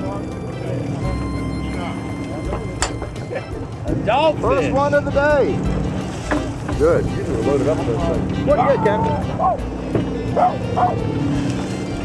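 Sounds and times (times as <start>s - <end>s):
boat engine idling: 0.0s - 12.0s
water splashing: 3.0s - 12.0s.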